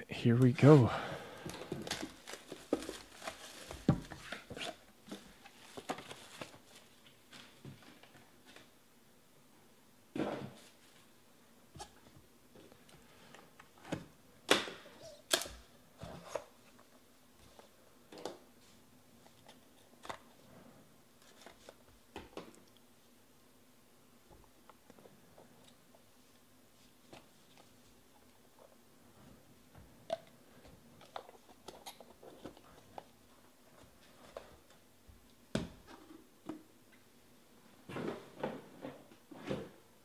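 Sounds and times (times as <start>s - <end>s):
cardboard boxes rustling and scraping: 1.7s - 7.6s.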